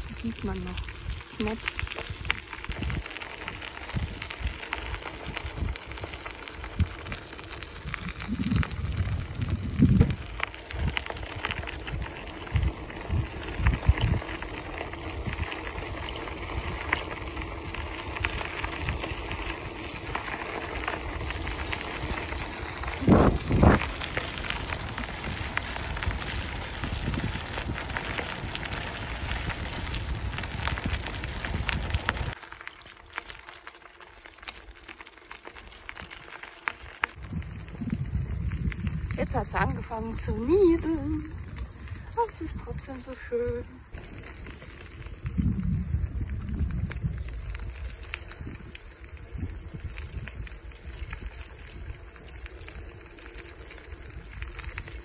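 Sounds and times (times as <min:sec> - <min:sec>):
bike tyres crunching on gravel: 0:00.0 - 0:55.0
wind thumps on microphone: 0:07.8 - 0:14.4, 0:22.9 - 0:32.4, 0:37.2 - 0:40.5, 0:45.2 - 0:47.7.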